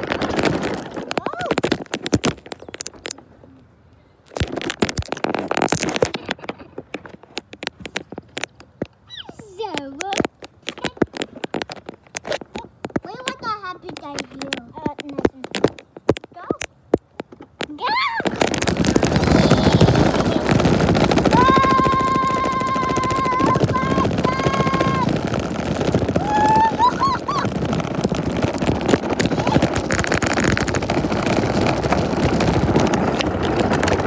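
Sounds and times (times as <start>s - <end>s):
rushing noise on microphone: 0.0s - 3.5s, 4.2s - 34.0s
fingers tapping on microphone: 4.3s - 17.7s
child's wordless voice: 12.6s - 15.5s, 19.3s - 20.6s, 21.4s - 25.1s.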